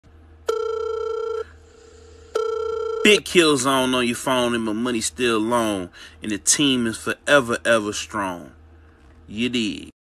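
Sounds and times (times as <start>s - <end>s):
phone ringtone: 0.5s - 1.6s, 2.2s - 3.2s.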